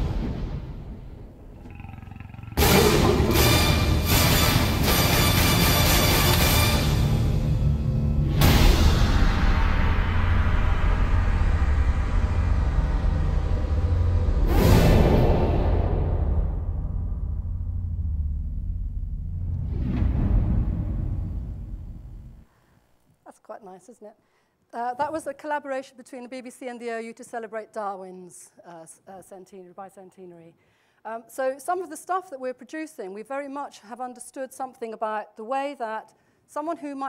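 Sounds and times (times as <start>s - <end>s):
loud roar: 1.6s - 4.4s
low rumble: 8.0s - 22.5s
rising whoosh: 19.4s - 22.4s.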